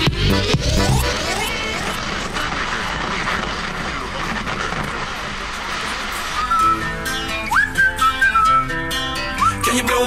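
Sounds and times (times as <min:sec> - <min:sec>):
car engine and road roar: 0:00.0 - 0:10.0.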